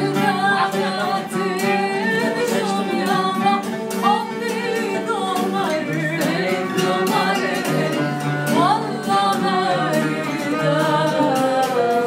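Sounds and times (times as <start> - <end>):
bowed violin: 0.0 - 12.0
woman singing: 0.0 - 12.0.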